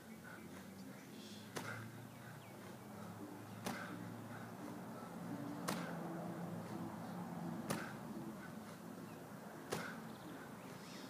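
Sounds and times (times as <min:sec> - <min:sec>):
medicine ball landing smack: 0:01.5 - 0:01.8, 0:03.6 - 0:03.9, 0:05.6 - 0:06.0, 0:07.6 - 0:08.0, 0:09.7 - 0:10.0.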